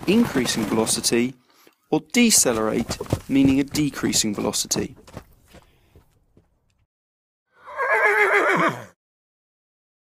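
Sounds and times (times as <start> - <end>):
horse whinnying: 7.5 - 9.0.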